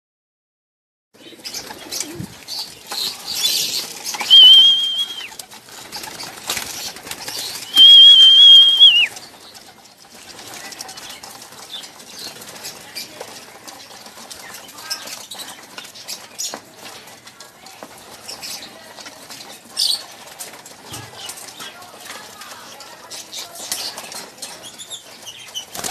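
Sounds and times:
pigeon wings flapping: 1.3 - 25.9
long high whistles: 4.2 - 5.3, 7.7 - 9.1.

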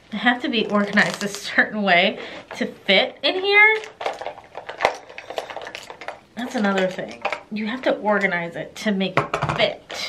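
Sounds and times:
plastic containers clicking and knocking: 3.4 - 8.2, 9.2 - 10.0.

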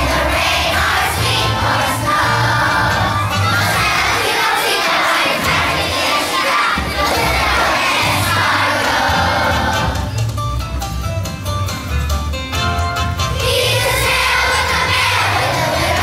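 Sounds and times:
children singing together: 0.0 - 10.1, 13.3 - 16.0.

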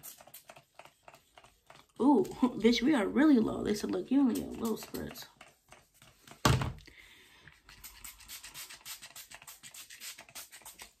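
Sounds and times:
spray bottle spritzing: 0.0 - 1.2, 7.6 - 11.0.

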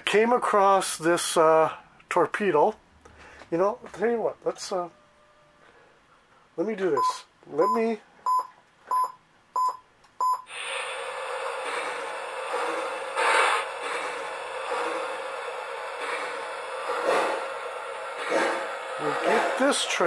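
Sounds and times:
short electronic beeps: 7.0 - 10.5
toy train rolling on track: 10.5 - 20.0.

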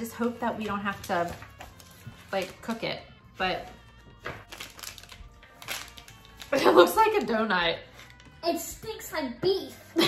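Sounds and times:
faint background music: 0.0 - 10.0
plastic wrapper tearing open: 4.4 - 7.3.

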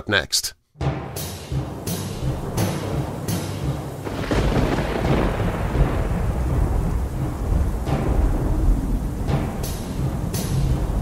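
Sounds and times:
thunder rumbling: 2.2 - 11.0
steady rain: 3.9 - 11.0.

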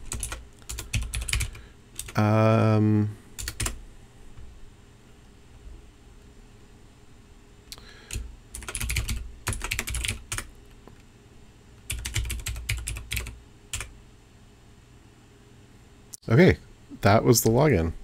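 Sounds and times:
computer keyboard typing: 0.0 - 2.2, 3.4 - 3.8, 8.1 - 10.5, 11.8 - 13.9.

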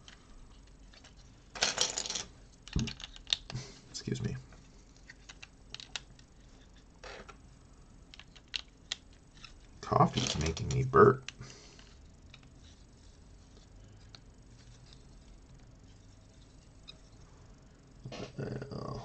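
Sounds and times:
loose plastic pieces rattling: 0.6 - 3.6, 5.1 - 6.2, 8.1 - 11.9
plastic bricks clicking: 1.0 - 3.6, 5.1 - 6.2, 8.1 - 9.6.

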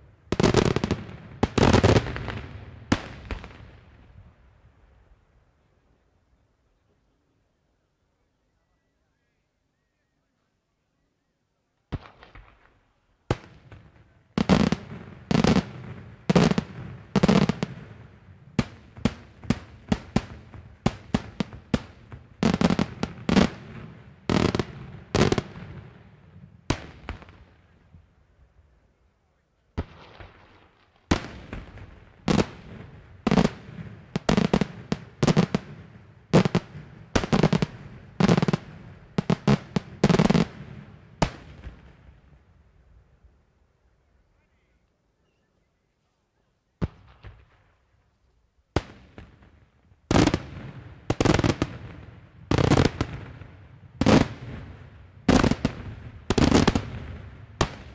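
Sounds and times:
fireworks bursting with echo: 0.0 - 5.1, 11.9 - 28.1, 29.7 - 42.6, 46.8 - 47.9, 48.7 - 57.9.

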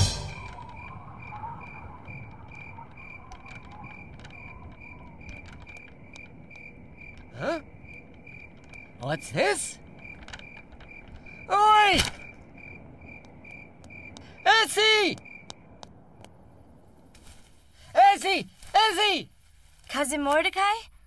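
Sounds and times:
crickets chirping: 0.0 - 21.0.

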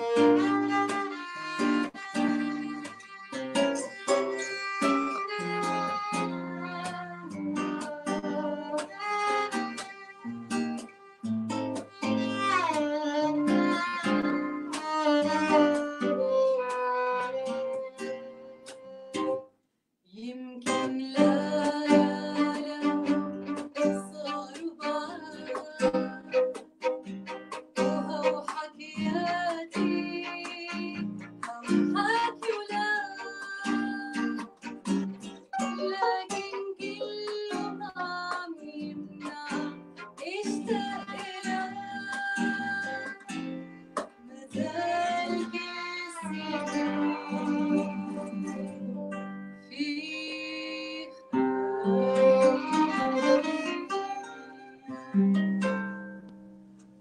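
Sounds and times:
plucked acoustic guitar: 0.0 - 19.5, 20.6 - 57.0
violin melody with sliding notes: 0.0 - 19.5, 20.7 - 56.4.

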